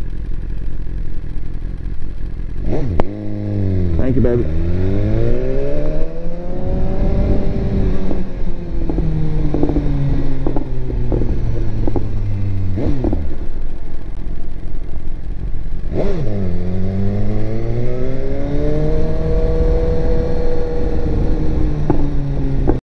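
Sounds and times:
motorcycle engine revving: 0:00.0 - 0:22.8.

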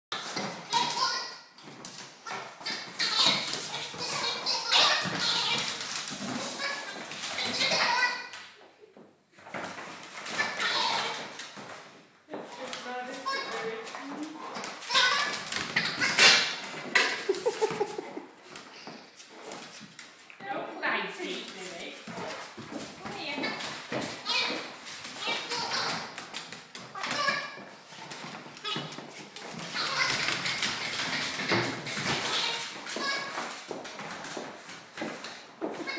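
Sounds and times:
dog scuffling: 0:00.1 - 0:08.4, 0:09.4 - 0:35.9
ball toy on tile floor: 0:00.1 - 0:35.9
dog claws clicking on tiles: 0:21.9 - 0:35.9.

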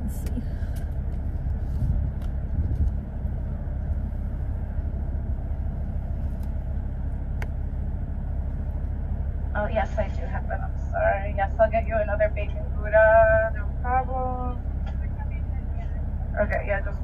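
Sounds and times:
car idling rumble: 0:00.0 - 0:17.0.

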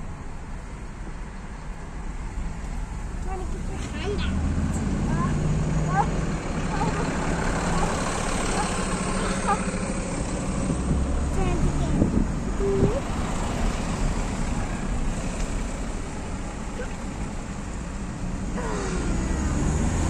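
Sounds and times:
car road and engine noise: 0:00.0 - 0:20.0.

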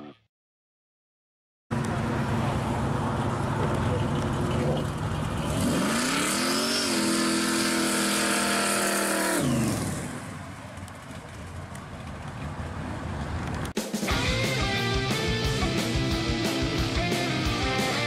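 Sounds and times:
car engine revving: 0:01.8 - 0:10.4.

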